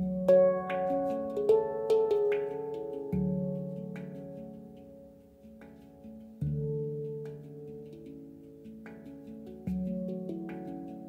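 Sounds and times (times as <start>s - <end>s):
handpan melody: 0.0s - 11.0s.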